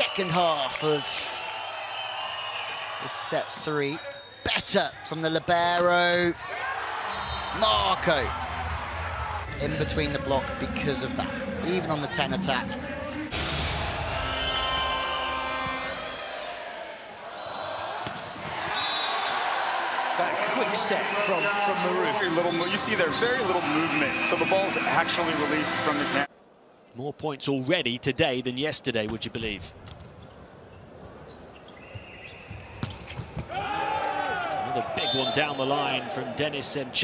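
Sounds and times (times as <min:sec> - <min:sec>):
arena crowd noise: 0:00.0 - 0:37.0.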